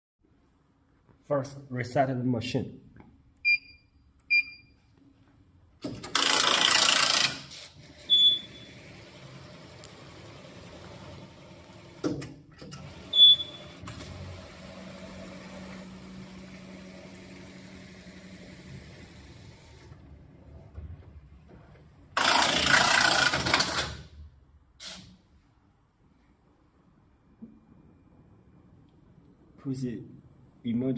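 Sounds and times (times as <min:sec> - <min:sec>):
knitting machine carriage running: 0:06.0 - 0:08.0, 0:22.2 - 0:24.0.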